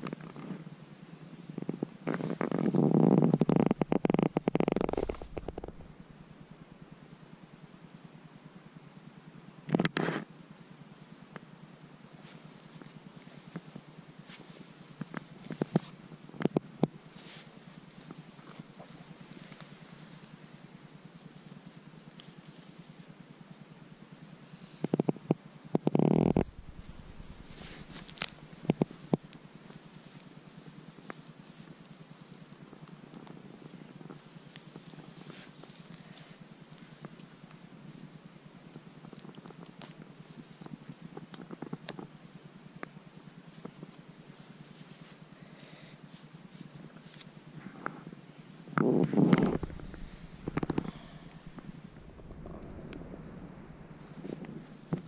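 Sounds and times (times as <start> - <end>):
low rough rubbing on microphone: 2.0 - 6.4, 25.9 - 29.1, 48.8 - 55.0
footsteps crunching moss and twigs: 3.8 - 5.9, 26.4 - 28.9, 49.4 - 54.0.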